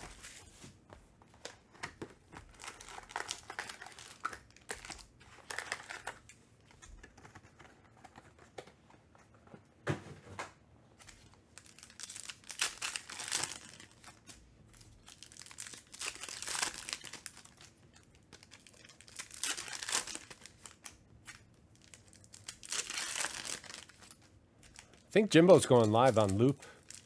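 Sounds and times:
foil wrappers tearing and crinkling: 2.4s - 6.2s, 11.6s - 14.4s, 15.0s - 27.0s.

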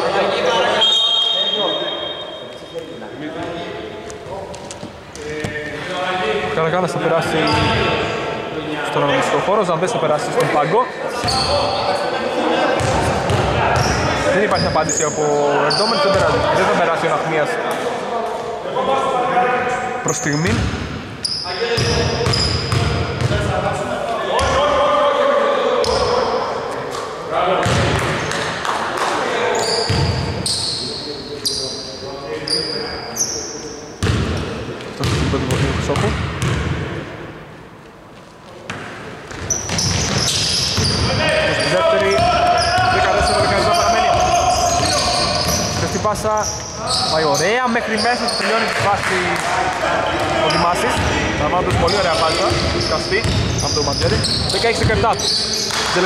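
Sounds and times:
voices echoing: 0.0s - 37.8s, 38.4s - 56.0s
shoe squeaks: 0.6s - 3.1s, 7.4s - 8.0s, 11.1s - 11.9s, 13.8s - 16.3s, 21.2s - 22.9s, 29.5s - 33.8s, 39.3s - 48.7s, 51.7s - 55.8s
basketball bouncing on wooden court: 12.8s - 14.0s, 21.8s - 23.5s, 29.9s - 30.3s, 34.0s - 34.4s, 35.0s - 36.8s, 38.7s - 41.2s, 51.7s - 55.0s.

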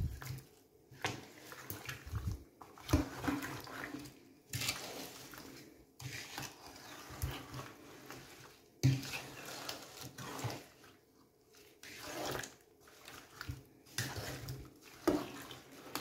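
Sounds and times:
spoon stirring fruit in pot: 0.0s - 16.0s.

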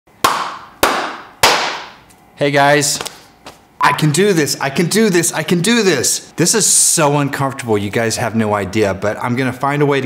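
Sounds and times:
hand claps with room echo: 0.2s - 2.1s.

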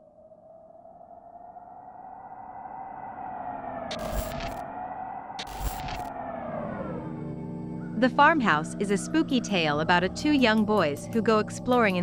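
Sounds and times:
eerie pitched drone gliding upward: 0.0s - 12.0s.

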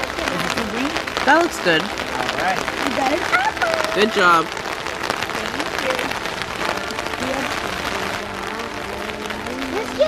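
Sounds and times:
faint voices: 0.0s - 10.0s
rain pattering on an umbrella: 0.0s - 10.0s.

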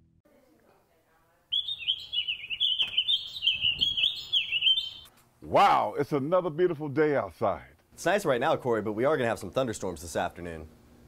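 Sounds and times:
songbird chirping and warbling: 1.5s - 5.1s.

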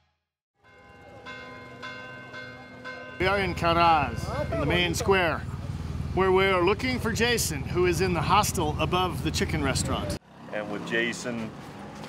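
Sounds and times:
church bells ringing: 0.6s - 5.5s.

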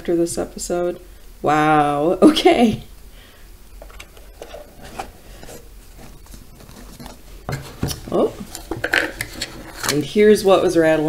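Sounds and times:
box lid sliding: 3.9s - 9.9s.

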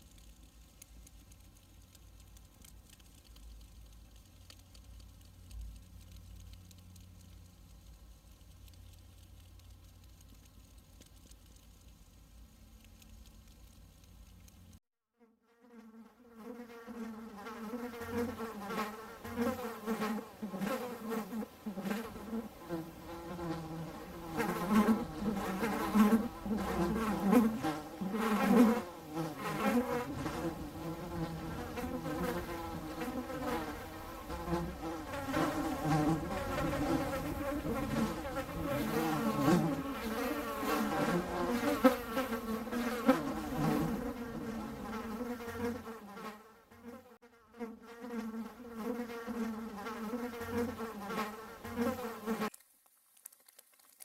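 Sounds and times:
bumblebees buzzing: 15.7s - 47.0s.

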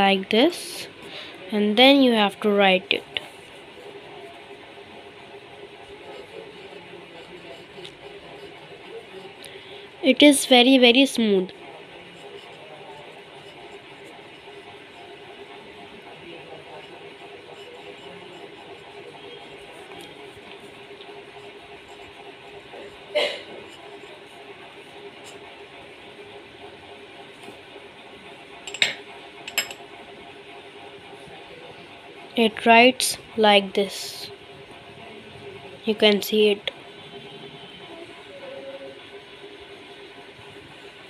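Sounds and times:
faint room hum and hiss: 0.0s - 41.0s
glass pen writing on paper: 5.8s - 9.4s, 12.1s - 15.2s, 16.4s - 20.3s, 21.2s - 24.2s.

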